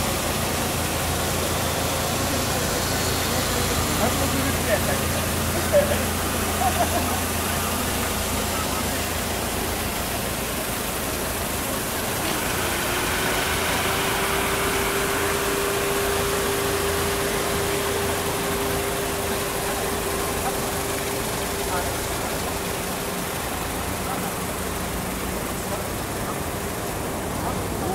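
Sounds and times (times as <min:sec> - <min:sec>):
higher-pitched hum: 0:00.0 - 0:26.6
car engine idling: 0:00.0 - 0:27.9.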